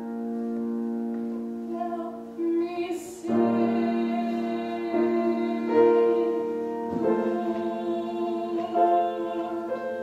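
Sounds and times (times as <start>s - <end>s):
woman singing long held notes: 1.7s - 10.0s.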